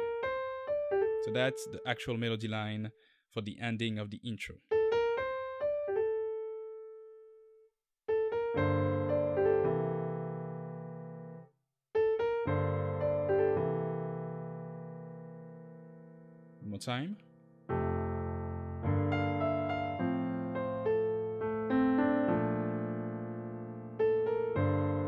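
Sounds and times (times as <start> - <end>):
piano melody and chords: 0.0 - 2.7, 4.7 - 25.0.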